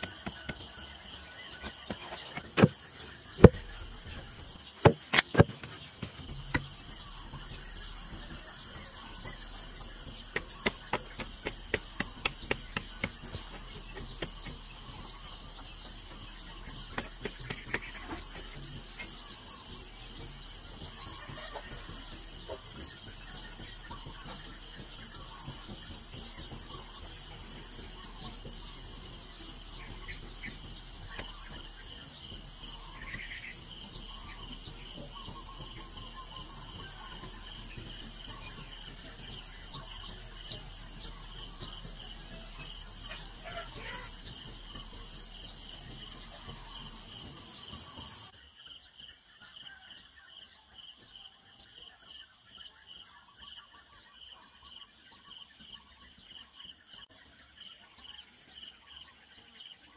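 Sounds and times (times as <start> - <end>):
insects chirring: 0.0 - 59.9
sharp knocks: 3.4 - 6.8.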